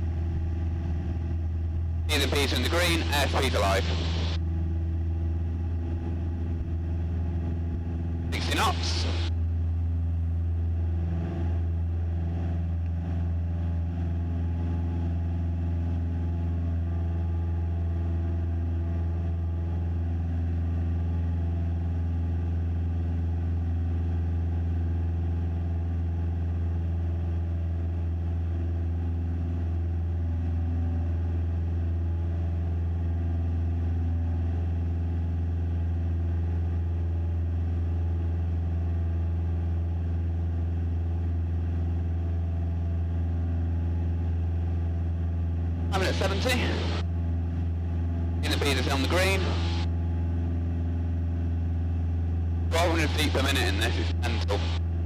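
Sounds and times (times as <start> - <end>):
airplane engine drone in cabin: 0.0 - 55.0.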